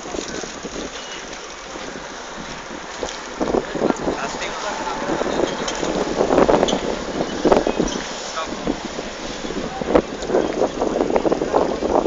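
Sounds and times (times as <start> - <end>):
wind blowing across microphone: 0.0 - 12.0.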